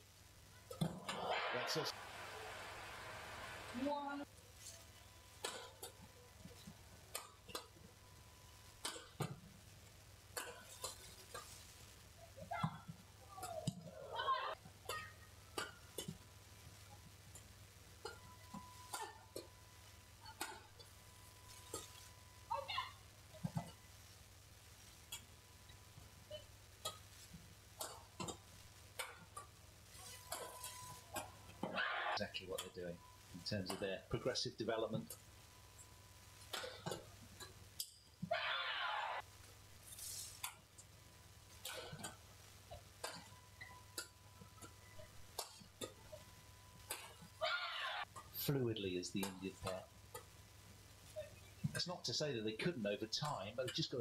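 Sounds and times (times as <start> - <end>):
rackets hitting shuttlecock: 5.4 - 6.0, 8.8 - 9.4, 14.9 - 16.2, 36.5 - 37.1, 46.9 - 47.2
rackets striking shuttlecock: 36.5 - 37.1, 46.9 - 47.2.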